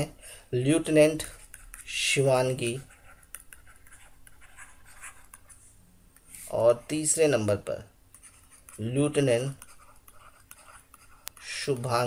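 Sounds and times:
stylus scratching on tablet: 0.8s - 7.2s, 8.1s - 12.0s.

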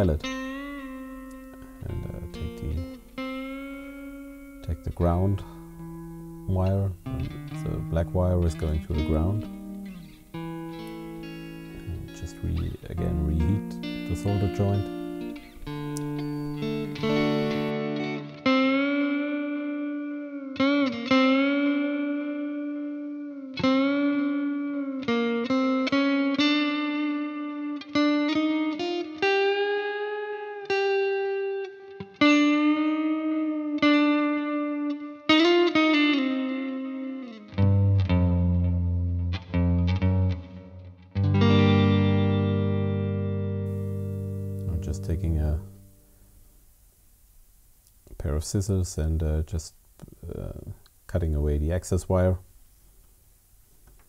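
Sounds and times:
ringing low guitar chords: 0.0s - 46.1s
electric guitar lead: 0.0s - 46.4s.

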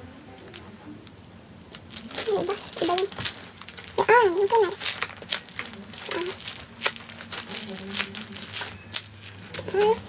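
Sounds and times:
plastic bag crinkling: 0.4s - 10.0s.

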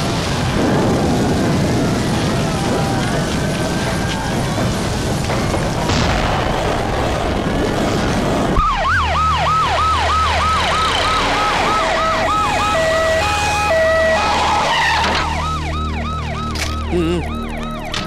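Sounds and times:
siren falling wail: 8.6s - 18.0s
two-tone siren: 8.6s - 18.0s.

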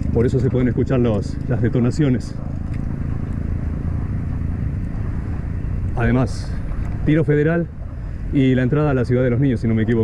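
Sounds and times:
bicycle rolling on pavement: 0.0s - 10.0s.

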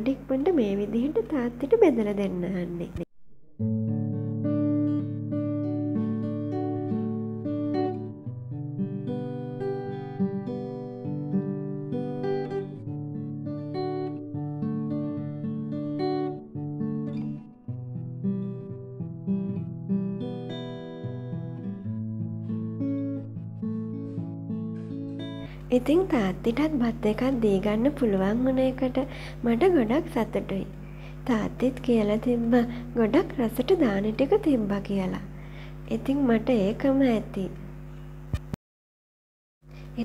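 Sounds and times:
acoustic guitar plucked melody: 3.4s - 30.8s.

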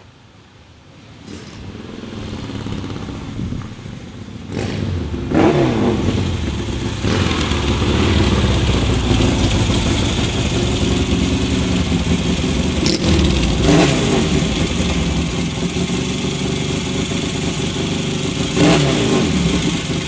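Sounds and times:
motorcycle throttle blips: 1.2s - 16.2s
motorcycles running at low revs: 1.2s - 20.0s.

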